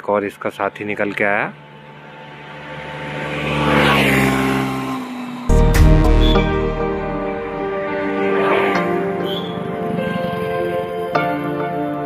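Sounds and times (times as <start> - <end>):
motor vehicle passing by: 1.3 - 10.6.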